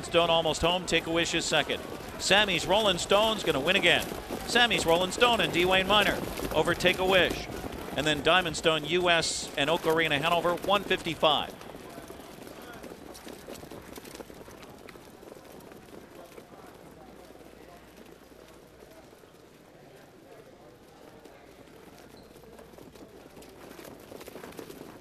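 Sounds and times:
distant voices: 0:00.0 - 0:12.7
horse hoofbeats on dirt: 0:00.0 - 0:25.0.

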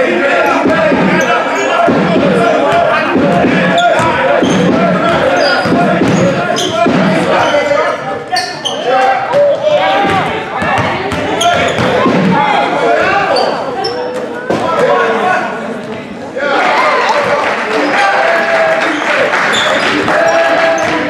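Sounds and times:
people calling out: 0:00.0 - 0:15.6
basketball dribbling: 0:00.6 - 0:07.6, 0:10.0 - 0:12.4
sneakers squeaking: 0:00.6 - 0:16.2, 0:18.9 - 0:21.0.

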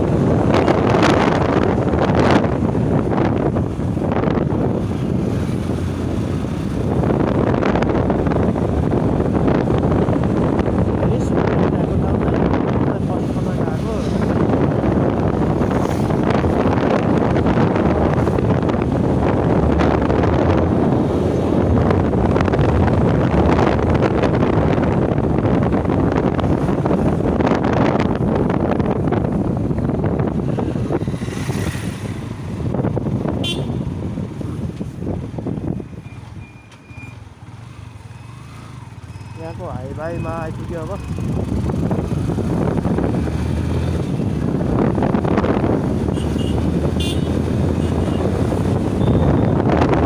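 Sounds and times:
motorcycle engine and road noise: 0:00.0 - 0:50.0
wind rushing over microphone: 0:00.0 - 0:50.0.

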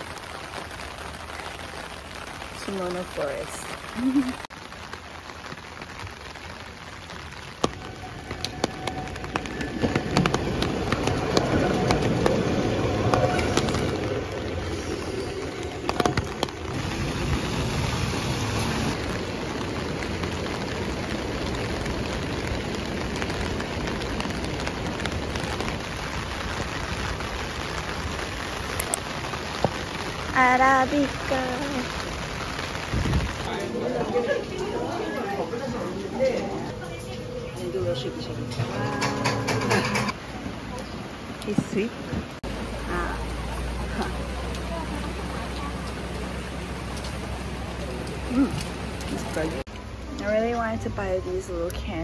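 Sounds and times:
raindrops ticking: 0:00.0 - 0:37.2, 0:38.9 - 0:52.0
heavy rain falling: 0:00.0 - 0:52.0.

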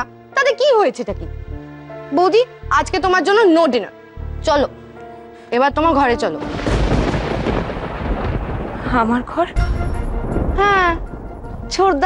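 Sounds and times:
thunder-like rumble sound effect: 0:06.4 - 0:12.0.

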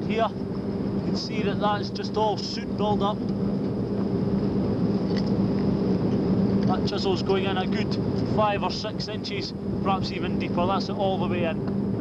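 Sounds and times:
low steady hum: 0:00.0 - 0:12.0
wind rumbling on microphone: 0:00.0 - 0:12.0.

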